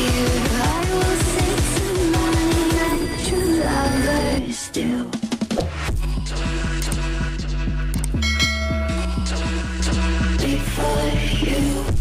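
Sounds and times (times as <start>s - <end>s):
background music with steady beat: 0.0s - 12.0s
bright bell chime: 8.2s - 9.3s.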